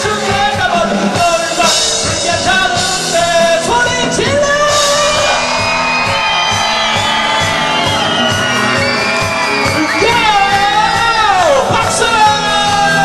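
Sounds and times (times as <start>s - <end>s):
person singing lead vocal: 0.0s - 5.6s, 9.9s - 13.0s
electric guitars: 0.0s - 13.0s
steady drum beat: 0.0s - 13.0s.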